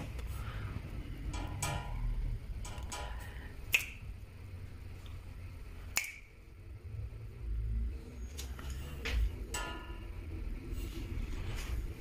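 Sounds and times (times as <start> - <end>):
finger snaps: 3.7 - 4.0, 5.9 - 6.4.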